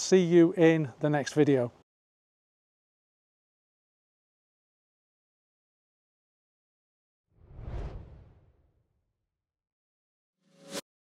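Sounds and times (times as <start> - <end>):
deep whoosh: 7.4 - 8.5.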